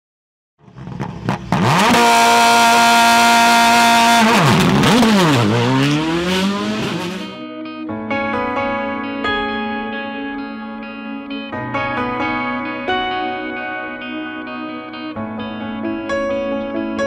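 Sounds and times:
racing car engine revving: 0.6 - 7.4
guitar music: 2.0 - 17.0.

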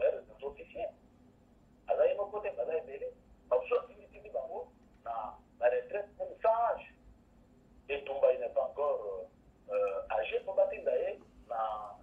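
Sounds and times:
speech over telephone line: 0.0 - 1.0, 1.8 - 7.0, 7.9 - 12.0.

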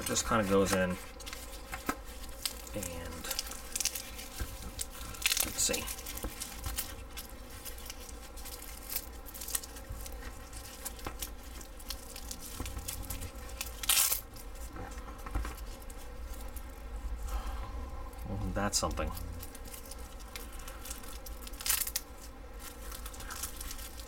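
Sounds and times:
fabric rustling and scraping: 0.0 - 17.2.

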